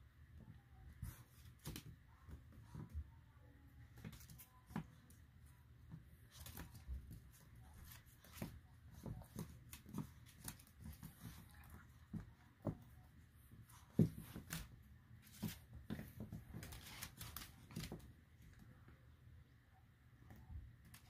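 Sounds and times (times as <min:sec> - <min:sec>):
faint low room hum: 0:00.0 - 0:21.0.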